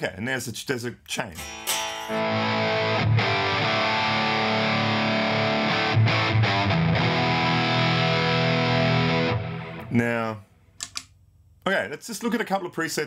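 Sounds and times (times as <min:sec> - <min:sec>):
distorted electric guitar chords: 0:01.4 - 0:10.0.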